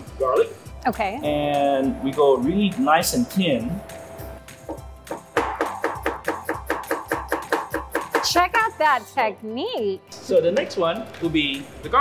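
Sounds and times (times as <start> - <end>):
background music: 0.0 - 12.0
cleaver chopping on wooden board: 4.6 - 8.4.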